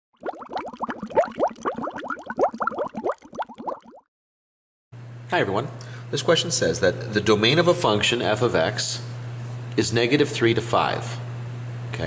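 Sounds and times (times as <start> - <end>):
water bubbling: 0.2 - 4.0.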